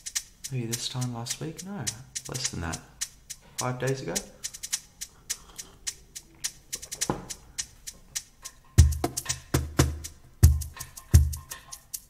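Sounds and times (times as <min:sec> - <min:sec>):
drum machine hi-hat ticks: 0:00.0 - 0:12.0.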